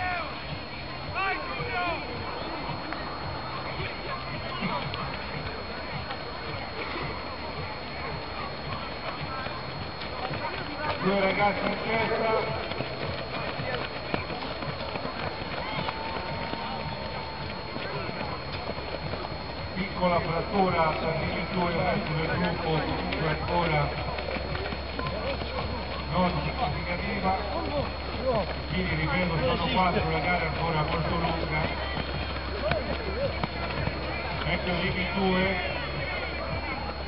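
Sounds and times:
runners' footsteps on grass and dirt: 0.0s - 37.0s
steady low hum: 0.0s - 37.0s.

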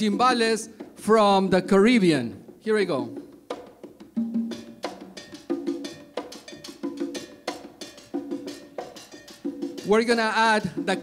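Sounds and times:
congas playing: 0.0s - 11.0s.

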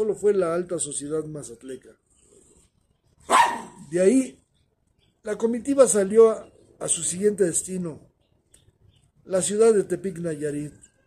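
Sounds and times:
dog bark: 3.3s - 3.8s.

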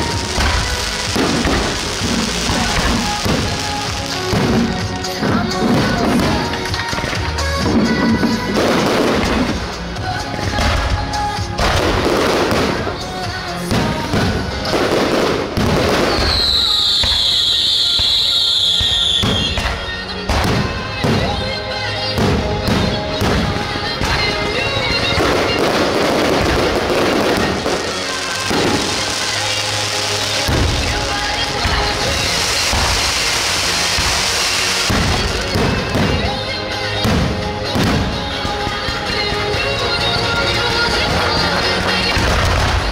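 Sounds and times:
fireworks bangs and crackles: 0.0s - 42.9s
firework whistle falling: 15.9s - 19.9s.

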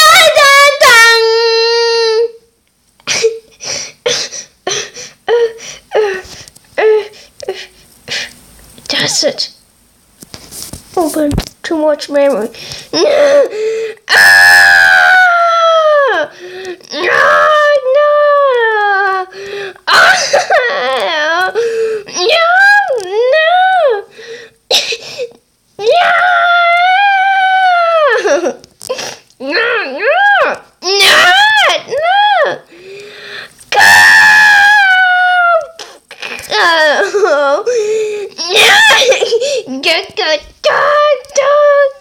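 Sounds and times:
person screaming: 14.1s - 16.2s, 16.9s - 19.1s, 29.4s - 32.6s, 33.7s - 37.0s, 38.4s - 39.3s
person crying out: 14.1s - 16.3s, 16.9s - 19.3s, 19.9s - 24.1s, 25.8s - 32.7s, 33.7s - 39.7s
person wailing in high voice: 16.9s - 19.3s, 19.9s - 24.1s, 25.8s - 28.6s, 29.4s - 32.6s, 33.8s - 37.7s, 38.4s - 39.9s, 40.6s - 42.0s.

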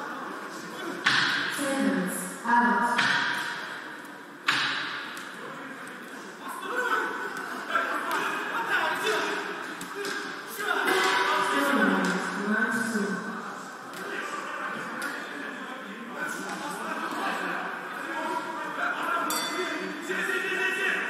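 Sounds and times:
men shouting in echoing hall: 6.3s - 21.0s.

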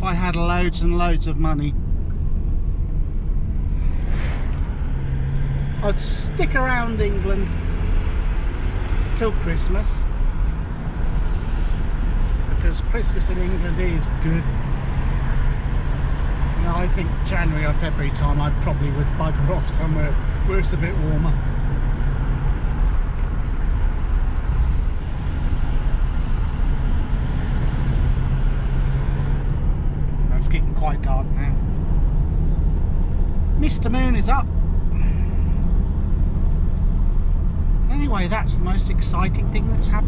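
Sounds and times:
road noise: 0.0s - 40.0s
van engine and tyre rumble: 0.0s - 40.0s.

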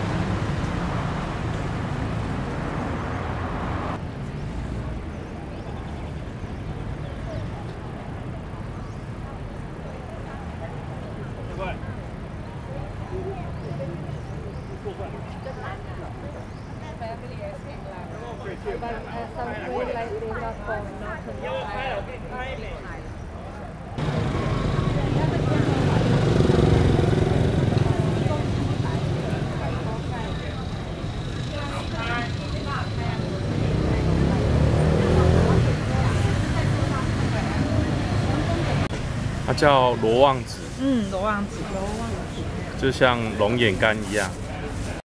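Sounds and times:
vehicle engine passing: 0.0s - 4.9s, 24.0s - 45.0s
road traffic rumble: 0.0s - 45.0s
voices of shoppers and vendors: 0.0s - 45.0s
people talking indistinctly: 8.8s - 45.0s.

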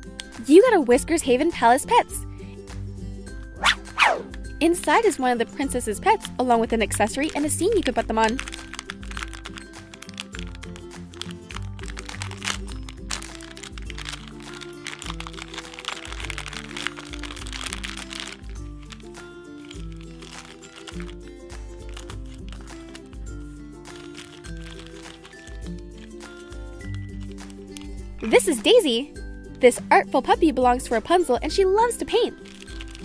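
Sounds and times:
plastic wrappers rustling: 6.9s - 28.7s, 32.1s - 33.0s
foil packaging crinkling and tearing: 7.0s - 28.5s, 32.4s - 33.0s.

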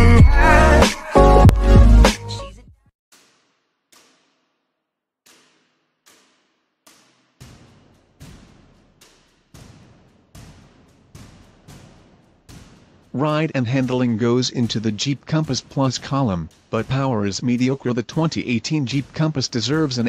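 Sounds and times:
percussive hits with ringing tails: 5.3s - 20.0s.

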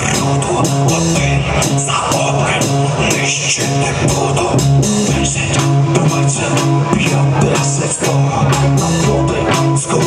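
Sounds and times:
bass guitar: 0.0s - 10.0s
electric guitar chords: 0.0s - 10.0s
steady drum beat: 0.0s - 10.0s.

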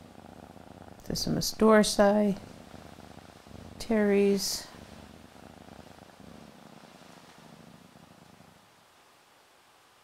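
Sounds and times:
cat purring: 0.0s - 10.0s.

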